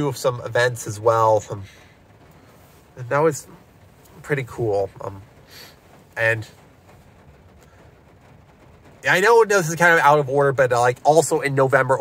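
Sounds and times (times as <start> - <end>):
car cabin background noise: 0.0 - 12.0.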